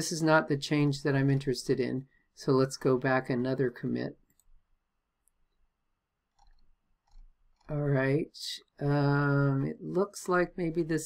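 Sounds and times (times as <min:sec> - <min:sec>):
computer mouse clicks: 0:06.3 - 0:07.7.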